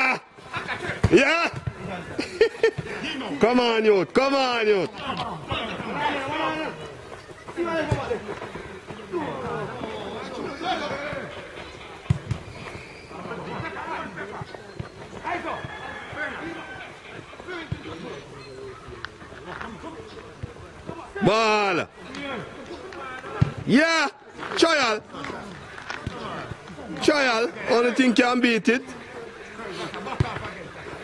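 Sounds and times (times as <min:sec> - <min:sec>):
men calling and shouting: 0:00.0 - 0:31.0.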